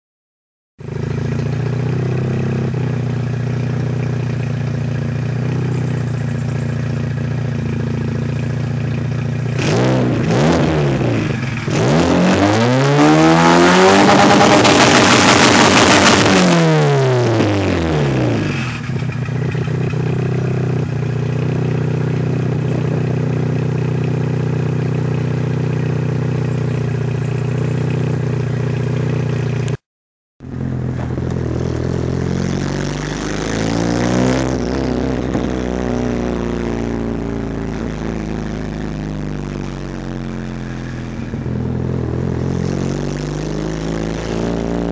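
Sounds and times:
car engine idling loudly: 0.8s - 16.5s, 17.1s - 29.8s, 30.4s - 44.9s
car engine revving while driving: 9.4s - 29.8s, 30.4s - 44.9s.

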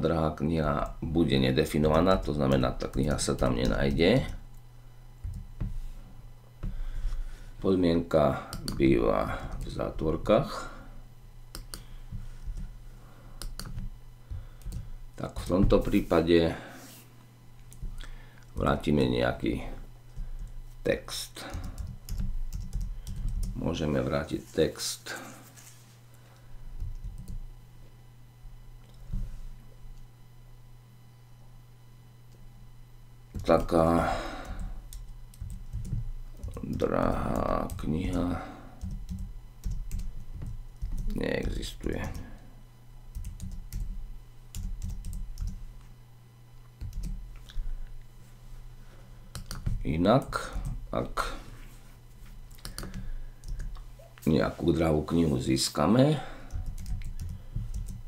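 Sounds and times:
typing on computer keyboard: 21.5s - 23.6s, 34.5s - 38.2s, 38.8s - 40.1s, 43.1s - 43.9s, 44.5s - 45.6s, 46.8s - 47.2s, 52.5s - 53.7s, 56.5s - 58.0s
keyboard keystrokes clicking: 52.5s - 53.7s.

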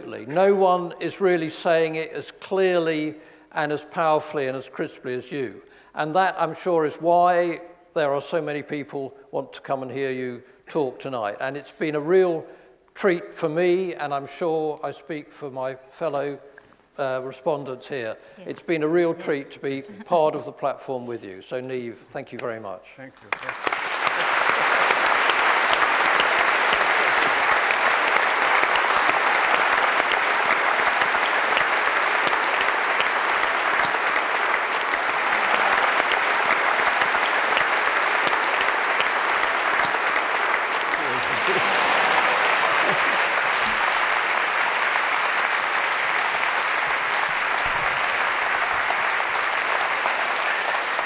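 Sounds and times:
audience applauding: 0.0s - 1.2s, 23.2s - 51.0s.

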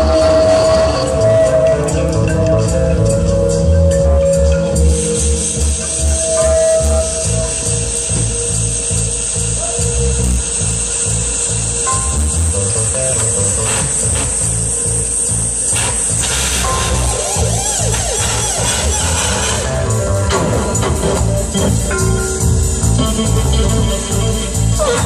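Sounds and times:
low pulsing beat: 0.0s - 25.0s
steady high hiss: 0.0s - 25.0s
swooping electronic tones: 0.0s - 25.0s
rough drill-like noise: 4.8s - 20.3s.

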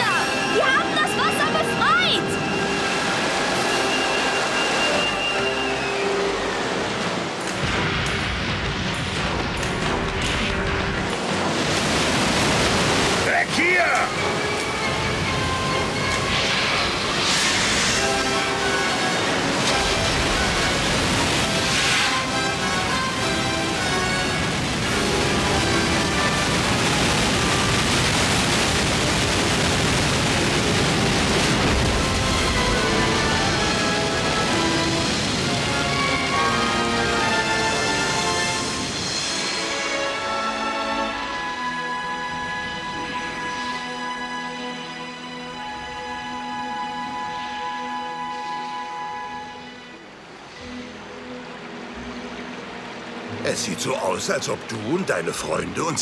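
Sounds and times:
orchestral music: 0.0s - 29.4s, 30.4s - 56.0s
water roaring: 0.0s - 56.0s.

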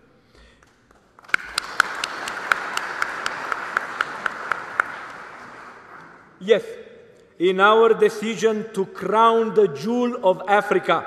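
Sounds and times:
sharp individual claps: 0.4s - 6.3s
audience applauding: 0.6s - 6.3s.

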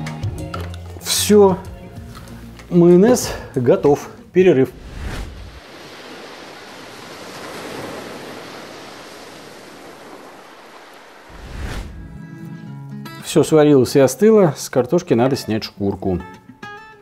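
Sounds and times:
music: 0.0s - 4.8s, 11.9s - 17.0s
sea surf waves: 4.6s - 12.4s.

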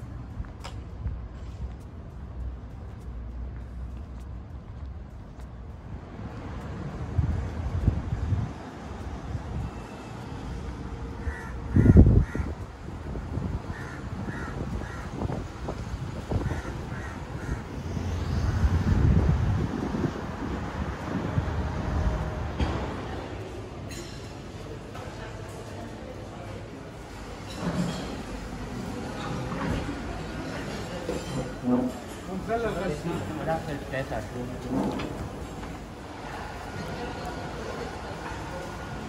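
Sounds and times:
wind rumble on microphone: 0.0s - 23.2s
crows cawing: 11.2s - 12.6s, 13.7s - 15.3s, 16.4s - 17.9s.

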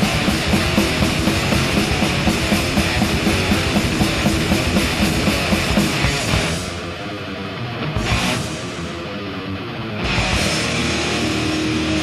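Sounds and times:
drum kit: 0.0s - 7.2s, 7.8s - 9.1s, 10.0s - 12.0s
distorted electric guitars: 0.0s - 12.0s.

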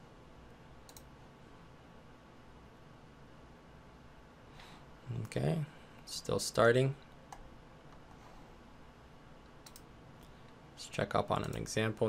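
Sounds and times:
mouse click: 0.9s - 1.1s, 9.6s - 9.9s.

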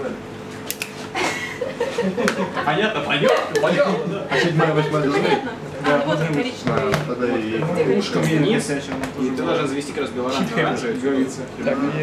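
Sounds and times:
people talking and chuckling: 1.0s - 6.6s, 7.2s - 12.0s.

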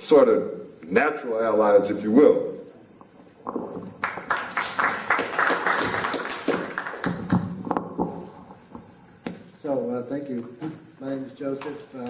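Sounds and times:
audience applause: 4.0s - 7.5s.

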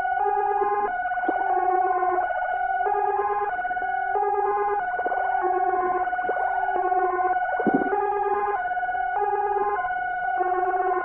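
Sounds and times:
pulsing synth tone: 4.2s - 8.6s.

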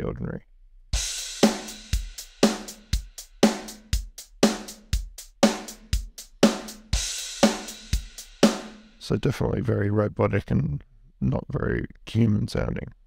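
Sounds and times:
robotic drum beat: 1.0s - 9.0s.

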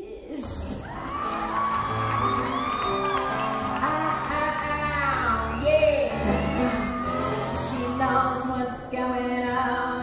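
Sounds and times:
woman singing wordless notes: 3.8s - 10.0s.

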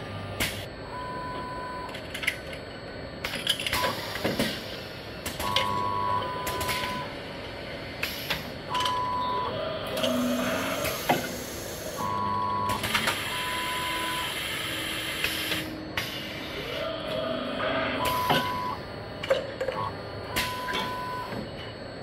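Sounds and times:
pneumatic valves clicking: 10.8s - 12.0s.

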